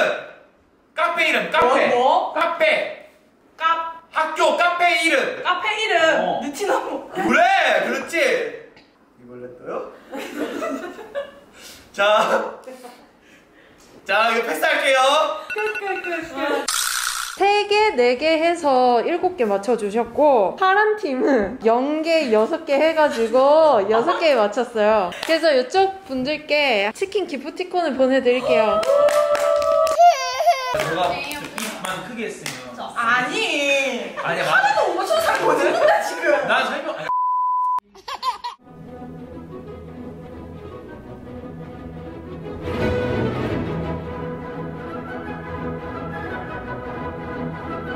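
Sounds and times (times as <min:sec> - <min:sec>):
people laughing: 0:10.1 - 0:11.4, 0:34.2 - 0:37.1
people talking: 0:17.4 - 0:28.9
background music: 0:38.6 - 0:47.9.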